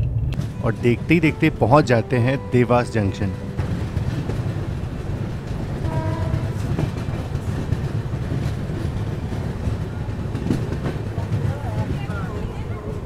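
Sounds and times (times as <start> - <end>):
train wheels rumbling: 0.0 - 13.0.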